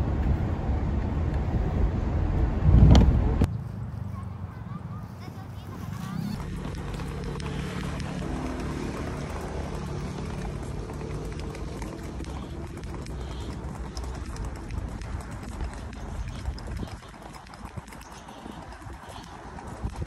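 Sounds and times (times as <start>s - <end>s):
low rumble: 0.0s - 3.6s
footsteps and scuffs: 3.4s - 20.0s.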